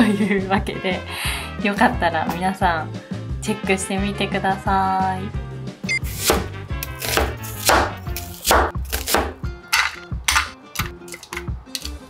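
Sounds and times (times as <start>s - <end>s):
knife chopping onions on board: 6.0s - 12.0s.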